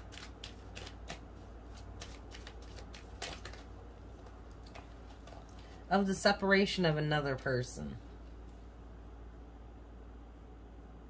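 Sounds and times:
cards being shuffled: 0:00.0 - 0:05.8.

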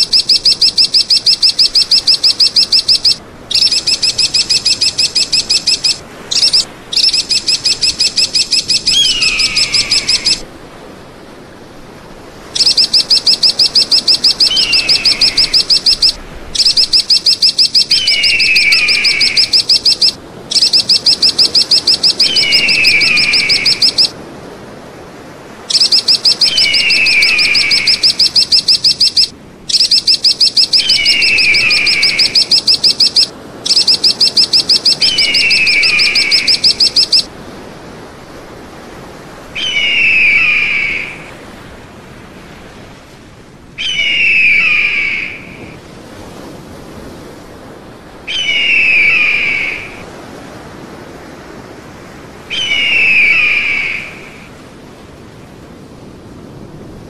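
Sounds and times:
eagle whistle: 0:00.0 - 0:10.4, 0:12.6 - 0:24.2, 0:25.7 - 0:37.3, 0:39.6 - 0:41.4, 0:43.8 - 0:45.8, 0:48.3 - 0:50.0, 0:52.5 - 0:54.5
rapid high chattering calls: 0:00.0 - 0:10.4, 0:12.6 - 0:24.2, 0:25.7 - 0:37.3, 0:39.6 - 0:41.3, 0:43.8 - 0:45.7, 0:48.3 - 0:50.0, 0:52.5 - 0:54.5.

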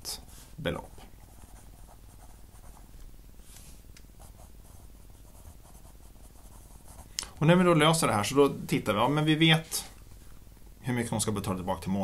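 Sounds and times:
pen scratching on paper: 0:04.2 - 0:07.1.

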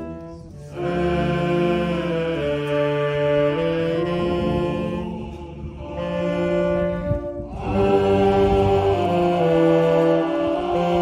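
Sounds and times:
men's choir singing in harmony: 0:00.0 - 0:11.0.

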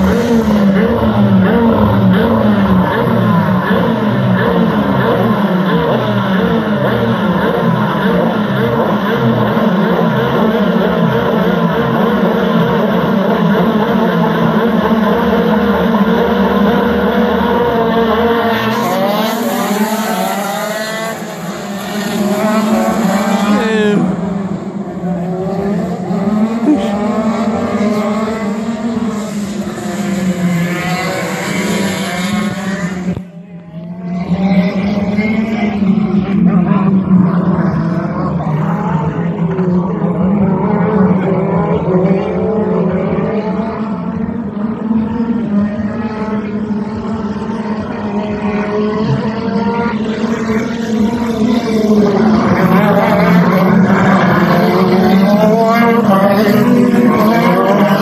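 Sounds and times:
kart engines revving: 0:00.0 - 0:58.0
karts accelerating through gears: 0:00.0 - 0:58.0
karts passing by: 0:00.0 - 0:58.0.

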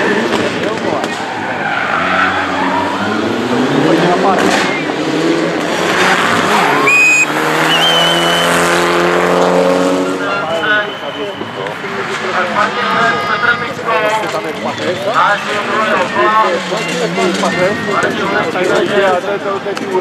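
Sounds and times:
rally car engine revving: 0:00.0 - 0:10.6, 0:13.7 - 0:20.0
tyres squealing: 0:06.5 - 0:08.4.

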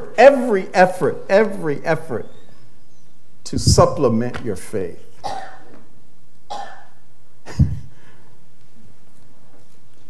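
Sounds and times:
man coughing: 0:05.2 - 0:05.8, 0:06.5 - 0:07.9.

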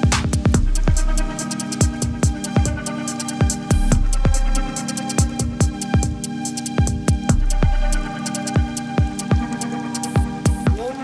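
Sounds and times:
deep kick drums: 0:00.0 - 0:09.6, 0:10.2 - 0:10.8
hi-hat ticks: 0:00.0 - 0:10.6
held synth chord: 0:00.0 - 0:11.0.

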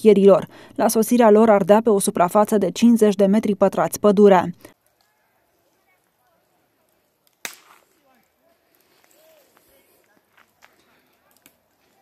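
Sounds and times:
sharp crack: 0:06.8 - 0:09.6.

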